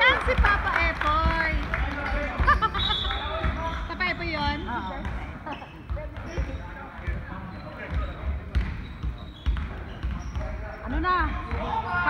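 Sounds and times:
basketball bouncing on court floor: 0:00.0 - 0:11.8
voices of players and spectators: 0:00.0 - 0:12.0.

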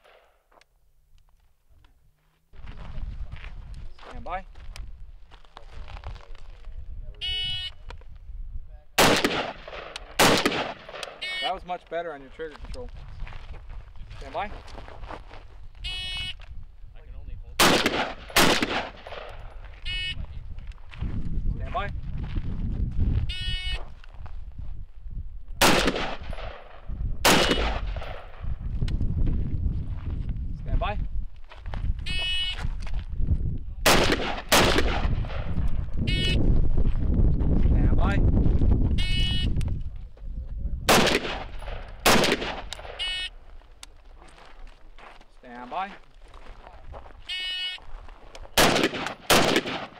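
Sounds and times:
rifle shots with echo: 0:09.0 - 0:11.3, 0:17.6 - 0:19.6, 0:25.6 - 0:28.5, 0:33.8 - 0:35.7, 0:40.9 - 0:43.1, 0:48.6 - 0:49.9.

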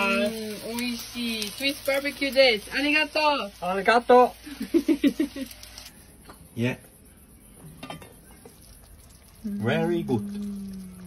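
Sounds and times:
metal cookware clinking on grill: 0:07.8 - 0:08.5.

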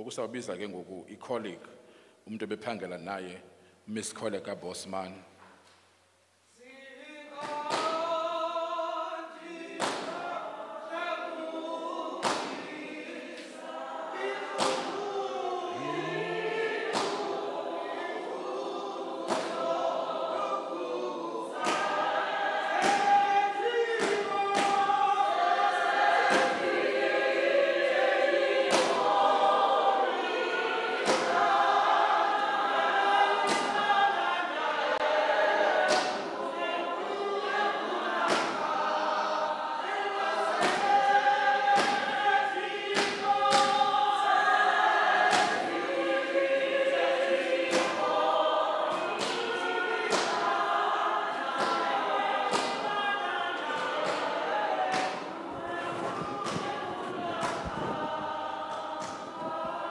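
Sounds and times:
congregation singing a hymn: 0:06.5 - 0:59.9.

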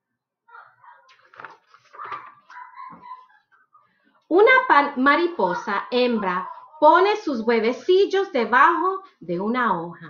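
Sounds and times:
book pages rustling: 0:01.0 - 0:03.0.

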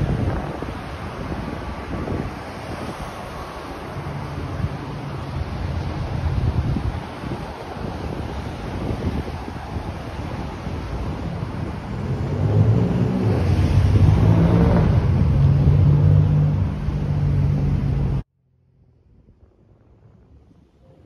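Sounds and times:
wind rumble on microphone: 0:00.0 - 0:21.0
vehicle engine passing close: 0:11.8 - 0:18.2.

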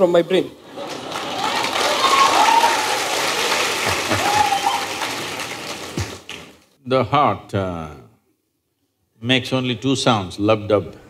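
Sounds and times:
audience applauding: 0:00.6 - 0:06.7
voices over clapping: 0:00.8 - 0:06.6.

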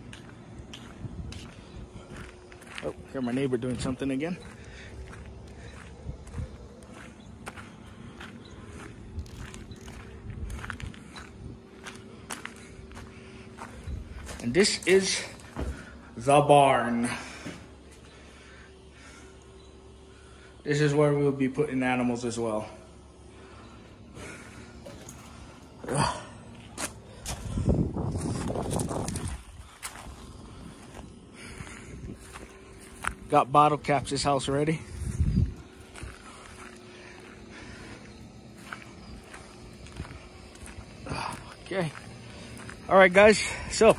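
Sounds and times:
footsteps crunching on gravel: 0:00.0 - 0:19.2, 0:22.1 - 0:43.9
faint steady hum: 0:00.0 - 0:43.9.

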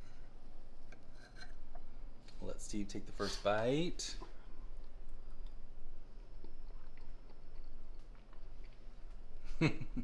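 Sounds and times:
low steady hum: 0:00.0 - 0:10.0
fork scraping a plate: 0:01.0 - 0:01.6.

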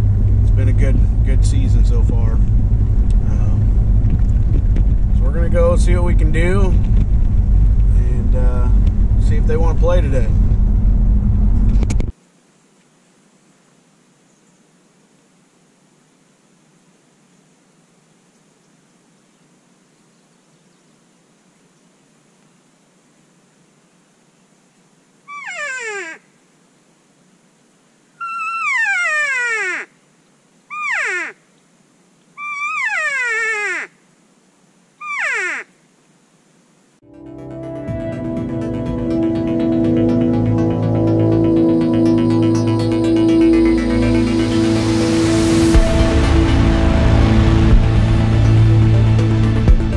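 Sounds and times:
elk cow calls: 0:25.2 - 0:26.3, 0:28.2 - 0:30.0, 0:30.7 - 0:31.4, 0:32.4 - 0:34.0, 0:35.0 - 0:35.8.

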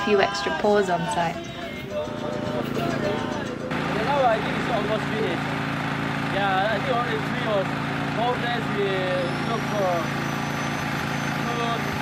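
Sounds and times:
people talking: 0:00.0 - 0:01.4, 0:02.8 - 0:05.4, 0:06.3 - 0:10.1, 0:11.4 - 0:12.0
background music: 0:00.0 - 0:05.8
small engine running: 0:01.3 - 0:12.0.

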